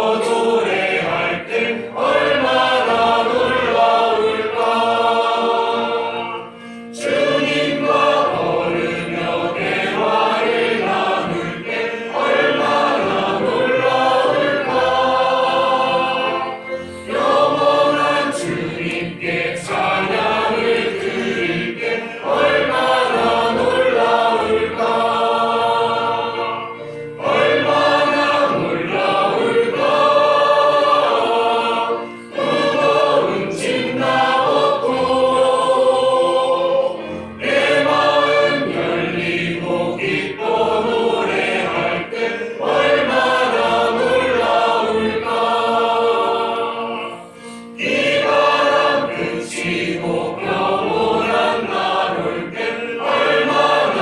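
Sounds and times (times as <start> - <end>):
group singing a hymn: 0.0 - 54.0.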